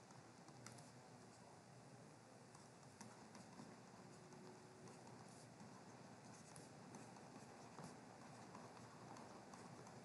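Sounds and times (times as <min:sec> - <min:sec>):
stylus tapping on a tablet: 0:02.6 - 0:10.0.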